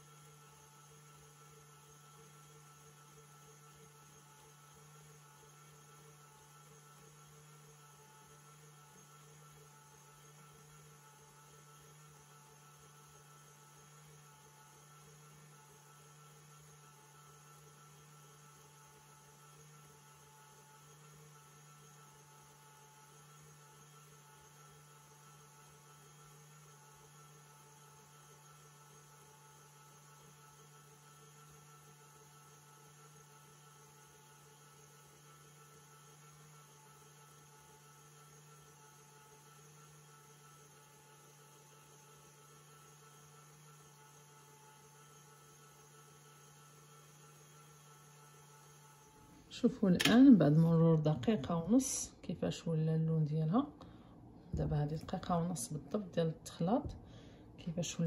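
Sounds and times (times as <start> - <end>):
faint stand mixer motor hum: 0.0 - 58.0.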